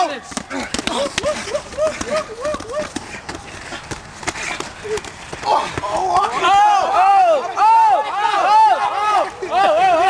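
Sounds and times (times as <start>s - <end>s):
person laughing: 0.8s - 3.0s.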